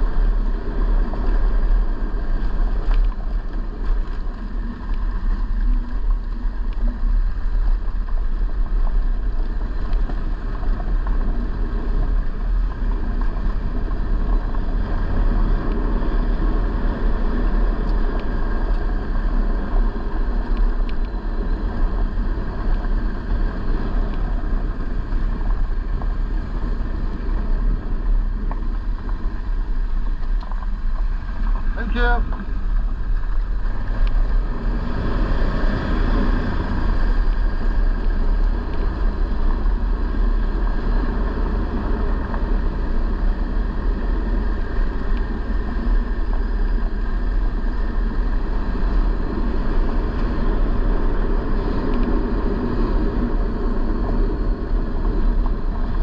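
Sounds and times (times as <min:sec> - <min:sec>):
road noise: 0:00.0 - 0:56.0
vehicle engine rumble: 0:00.0 - 0:56.0
wind noise on microphone: 0:00.0 - 0:56.0
light ticks: 0:02.8 - 0:07.0, 0:20.4 - 0:21.2.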